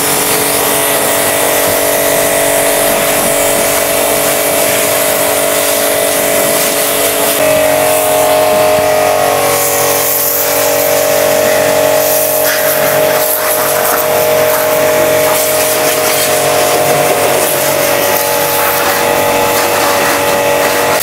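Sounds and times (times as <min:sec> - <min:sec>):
pressure washer pump whining: 0:00.0 - 0:21.0
water jet hissing on car: 0:00.0 - 0:21.0.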